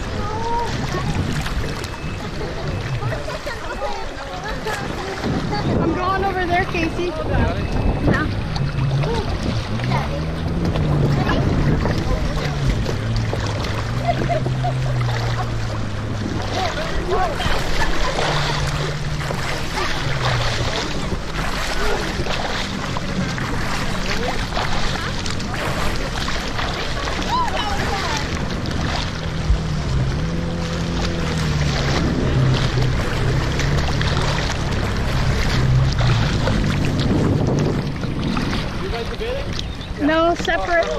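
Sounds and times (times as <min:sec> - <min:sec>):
jet ski engines idling: 0:00.0 - 0:40.9
water sloshing: 0:00.0 - 0:40.9.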